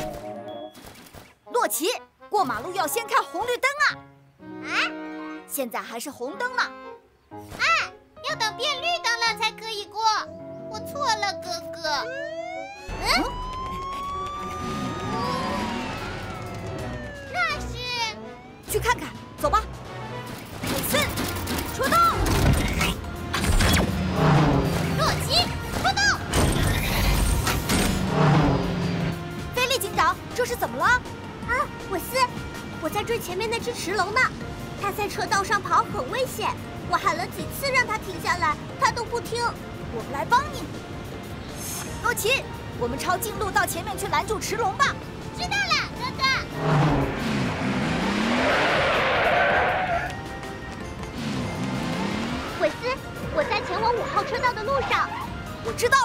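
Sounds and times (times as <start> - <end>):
background music: 0.0 - 56.0
cartoon car engine hum: 12.1 - 18.7, 46.2 - 50.1
hissing tyre screech: 46.5 - 50.3.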